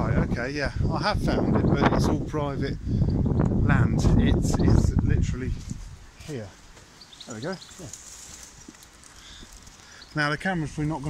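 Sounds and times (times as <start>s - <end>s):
outdoor background hush: 0.0s - 11.0s.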